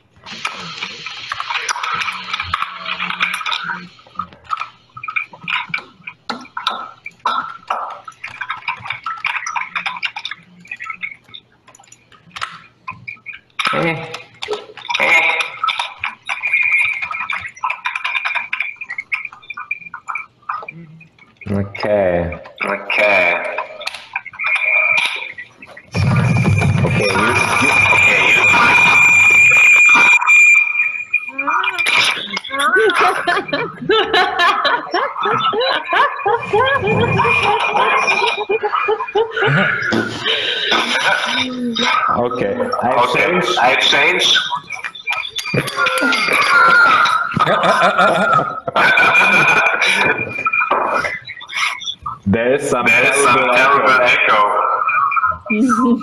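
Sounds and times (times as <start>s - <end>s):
garbled overlapping voices: 0.0s - 56.0s
warbling distorted echoes: 0.0s - 56.0s
high-pitched ringing tone: 0.4s - 56.0s
high feedback whistle: 22.9s - 34.1s, 42.7s - 55.8s.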